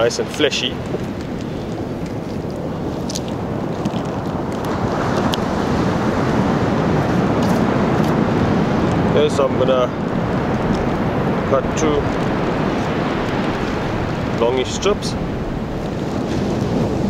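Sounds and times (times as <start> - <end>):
surf rushing: 0.0 - 17.0
wind on microphone: 0.0 - 17.0.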